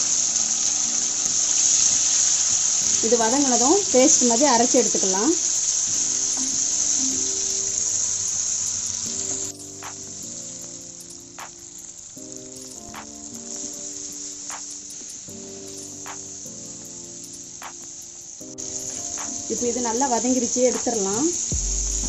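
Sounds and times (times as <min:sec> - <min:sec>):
soft background music: 0:00.0 - 0:22.0
vegetables sizzling in hot oil: 0:00.0 - 0:22.0.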